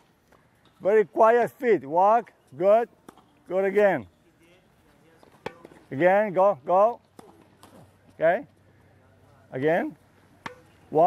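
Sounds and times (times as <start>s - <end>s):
tennis ball struck by racket: 10.4s - 10.8s.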